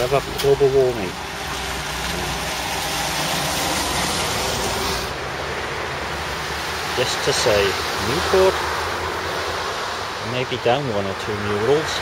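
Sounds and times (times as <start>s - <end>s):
tyres hissing on wet road: 0.0s - 12.0s.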